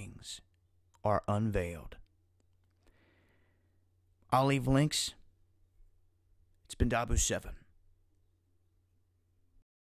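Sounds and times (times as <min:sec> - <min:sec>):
faint breath: 0:02.7 - 0:03.8.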